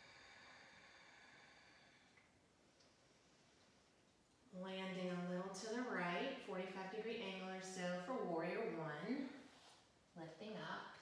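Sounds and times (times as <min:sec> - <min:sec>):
breathy hiss of breathing: 0:00.0 - 0:04.0.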